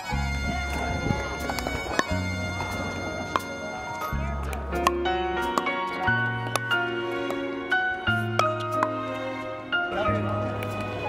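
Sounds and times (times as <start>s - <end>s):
background music with bass notes: 0.0s - 11.0s.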